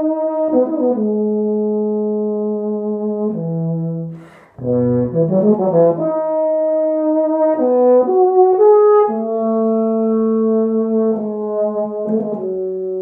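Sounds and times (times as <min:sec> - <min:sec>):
solo euphonium melody: 0:00.0 - 0:13.0.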